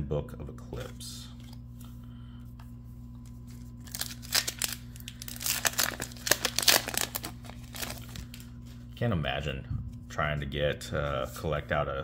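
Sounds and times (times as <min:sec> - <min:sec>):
low electrical hum: 0:00.0 - 0:12.0
foil wrapper tearing and crinkling: 0:03.5 - 0:08.5.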